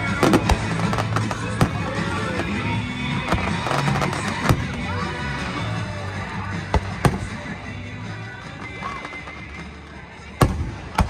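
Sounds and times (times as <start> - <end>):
fireworks bangs: 0.0 - 2.6, 3.2 - 4.8
music playing: 0.0 - 11.0.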